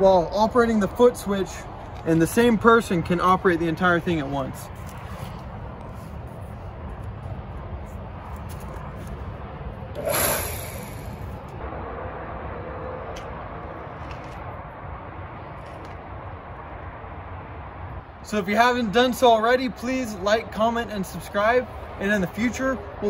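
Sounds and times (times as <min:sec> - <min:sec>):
hydraulic hiss: 0:10.0 - 0:11.2.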